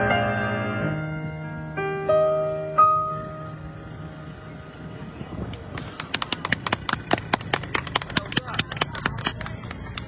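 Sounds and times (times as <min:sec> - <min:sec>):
people clapping: 0:05.4 - 0:10.0.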